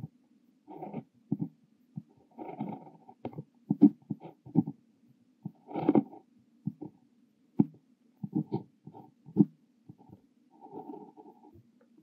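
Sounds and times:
fountain pen scratching on paper: 0.7s - 4.8s, 5.4s - 6.9s, 8.2s - 11.6s.

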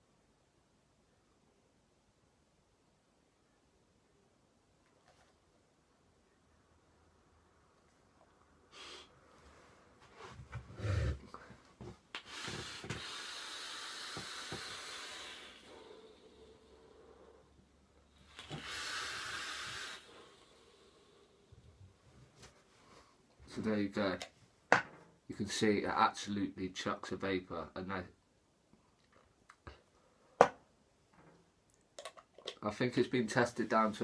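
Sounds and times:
exhale of vapour: 8.6s - 9.3s, 12.2s - 17.6s, 18.2s - 21.6s
airflow hiss of vape draw: 12.2s - 17.4s, 18.2s - 21.3s.

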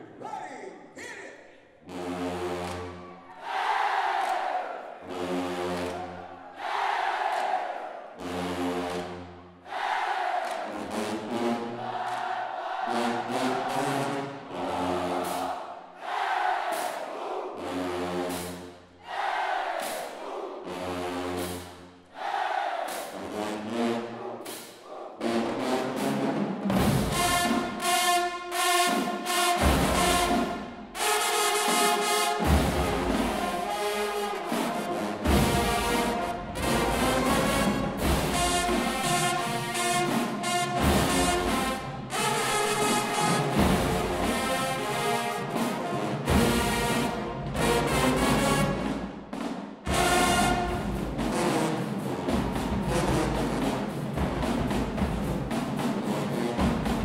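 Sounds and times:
drumline driving beat: 3.5s - 23.5s, 24.4s - 57.0s
marching band low held notes: 23.2s - 57.0s.

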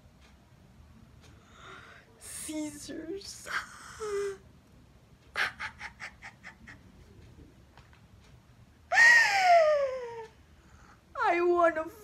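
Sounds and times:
woman laughing manically: 5.4s - 7.1s, 8.9s - 10.3s
woman's high-pitched cry: 8.9s - 10.4s.

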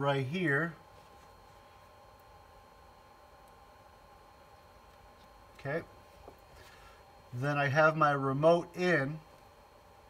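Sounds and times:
power supply high-pitched whine: 0.0s - 10.0s.

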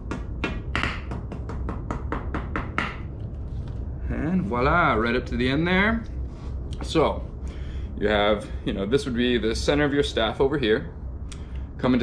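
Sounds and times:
staff knocking on floor: 0.0s - 3.1s.

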